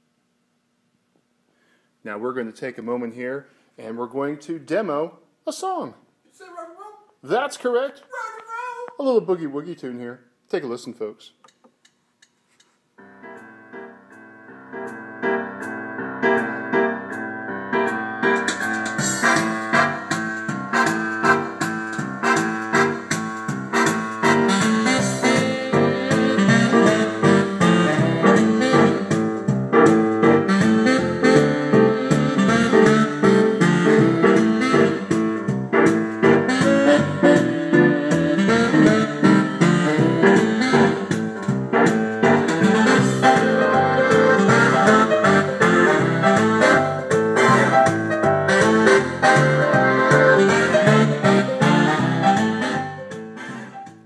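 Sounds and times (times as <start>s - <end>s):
boogie-woogie piano tune: 13.0s - 54.0s.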